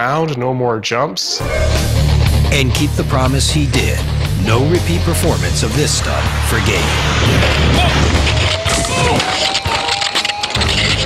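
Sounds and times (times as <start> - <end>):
rock music: 1.3 - 11.0.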